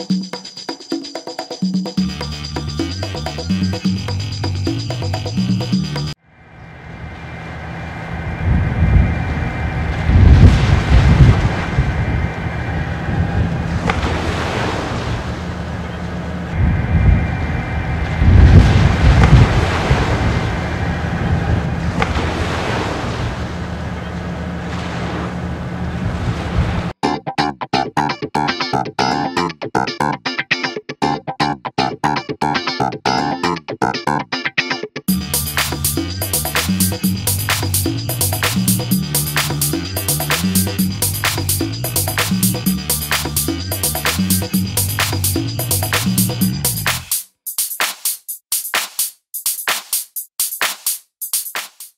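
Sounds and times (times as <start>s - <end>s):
steady low drone: 2.1s - 14.1s, 15.2s - 22.4s, 35.1s - 46.9s
sea waves washing: 6.4s - 27.0s
rhythmic guitar music: 27.0s - 47.8s.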